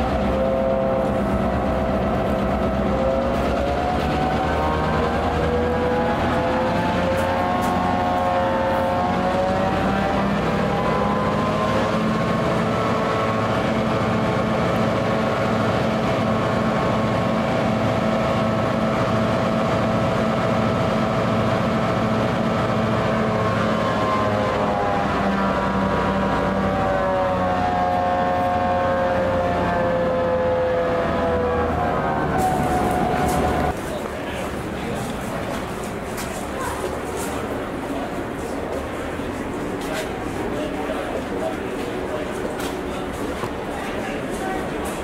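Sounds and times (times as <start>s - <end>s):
diesel locomotive engine idling: 0.0s - 45.0s.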